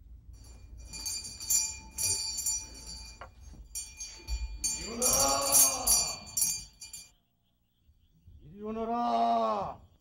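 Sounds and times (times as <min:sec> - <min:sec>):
small metal bell jingling: 0:00.4 - 0:07.2.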